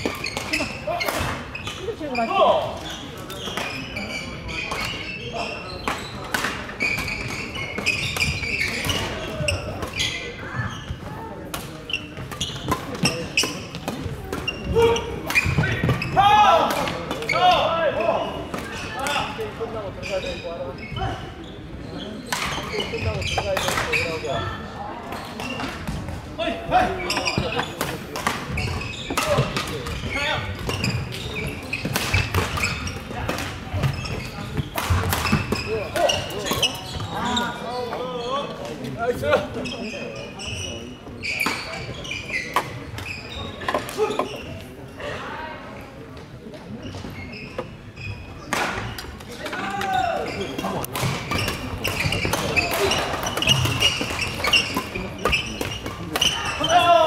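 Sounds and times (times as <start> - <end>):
many voices: 0.0 - 57.0.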